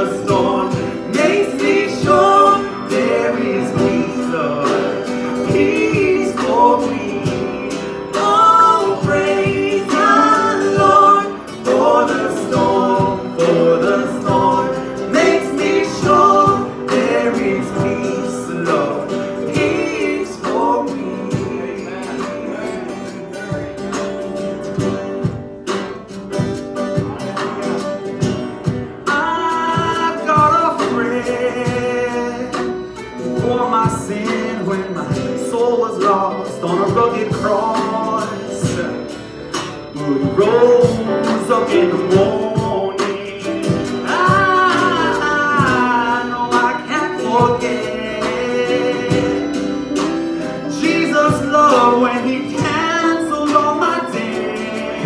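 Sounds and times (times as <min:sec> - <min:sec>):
woman singing: 0:00.0 - 0:22.0, 0:40.1 - 0:50.0
strummed acoustic guitar: 0:00.0 - 0:55.0.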